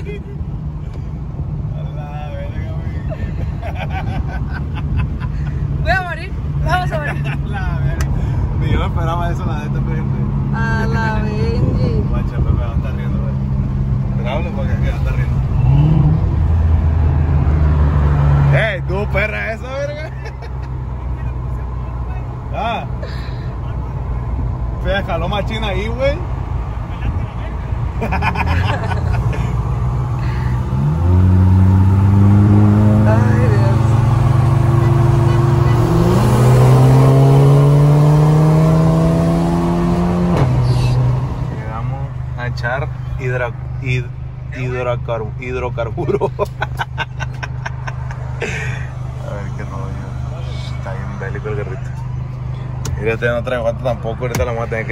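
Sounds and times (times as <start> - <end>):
people laughing: 3.0 - 5.6, 20.0 - 20.8, 28.0 - 29.6, 46.0 - 49.0
car engine accelerating: 3.8 - 19.9, 23.8 - 54.9
people talking: 32.9 - 34.0, 41.6 - 47.5, 48.4 - 52.0.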